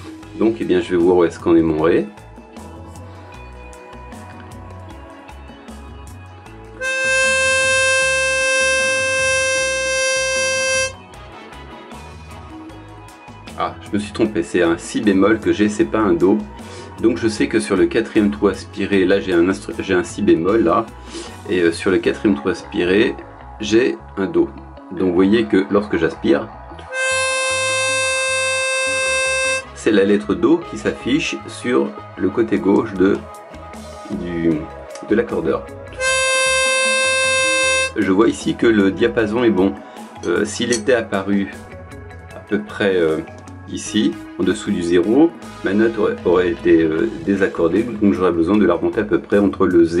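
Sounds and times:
harmonica held note: 6.8 - 11.0, 26.9 - 29.7, 36.0 - 38.0.

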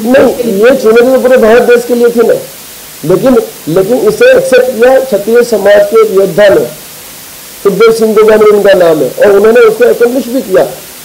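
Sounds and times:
man speaking into a microphone: 0.0 - 6.9, 7.6 - 10.9
steady hiss: 0.0 - 11.0.

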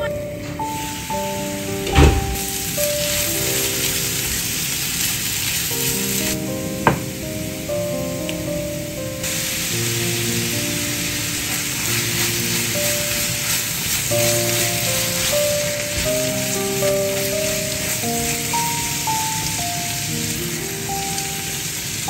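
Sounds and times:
soft background music: 0.0 - 22.0
carrots sizzling in frying pan: 0.6 - 22.0.

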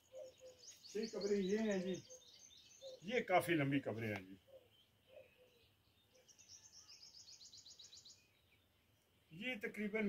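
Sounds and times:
faint bird trill: 0.0 - 3.2, 4.3 - 8.3.

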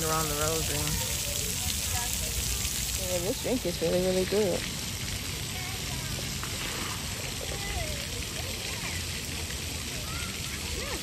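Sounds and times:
distant children's voices: 0.0 - 3.0, 5.2 - 11.0.

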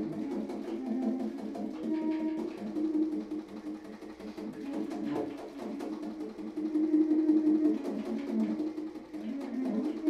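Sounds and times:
baritone saxophone: 0.0 - 3.2.

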